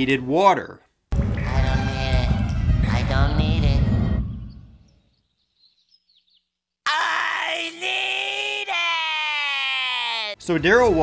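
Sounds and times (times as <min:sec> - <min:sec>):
cartoon voice yelling: 0:06.9 - 0:10.4.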